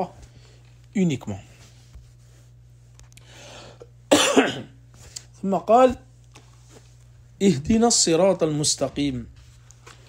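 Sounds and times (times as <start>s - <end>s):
soft intake of breath: 3.2s - 3.9s
man coughing: 4.1s - 4.8s.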